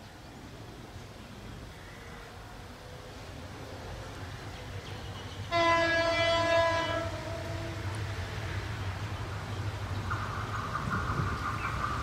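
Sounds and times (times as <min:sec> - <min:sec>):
train low rumble: 0:00.0 - 0:12.0
locomotive horn blast: 0:05.5 - 0:07.9.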